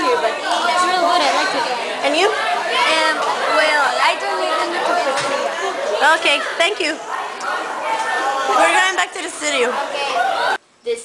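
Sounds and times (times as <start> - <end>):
young voices chattering: 0.0 - 11.0.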